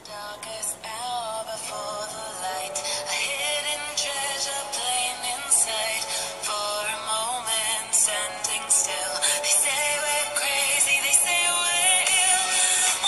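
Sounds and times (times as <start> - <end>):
song with high sung vocals: 0.0 - 13.0.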